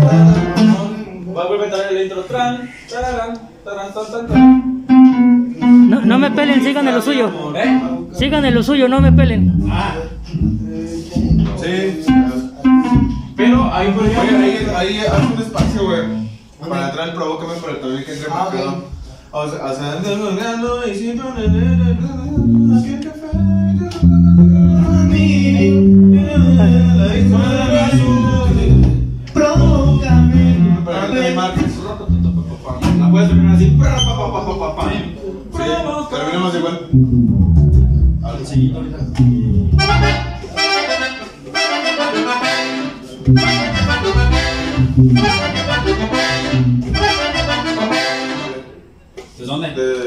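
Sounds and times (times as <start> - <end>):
electric bass long low notes: 0.0 - 0.9, 8.2 - 13.6, 21.4 - 34.8, 36.9 - 40.5, 43.3 - 47.8
guitar: 0.0 - 1.4, 4.2 - 16.7, 20.7 - 35.0, 36.9 - 48.5
accordion: 4.3 - 9.8, 21.4 - 31.1, 39.7 - 48.8.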